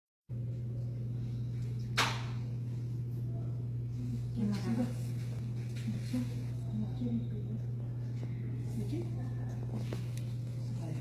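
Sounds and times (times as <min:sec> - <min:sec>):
steady low hum: 0:00.3 - 0:11.0.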